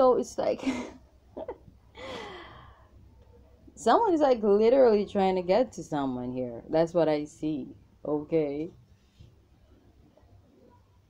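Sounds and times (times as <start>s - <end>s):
woman sighing: 2.0s - 2.8s.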